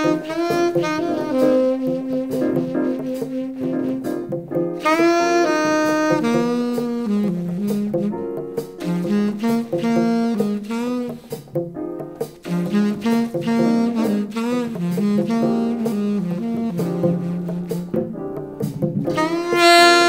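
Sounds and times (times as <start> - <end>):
saxophone melody: 0.0 - 11.5, 12.4 - 18.4, 19.0 - 20.0
drums striking: 0.0 - 20.0.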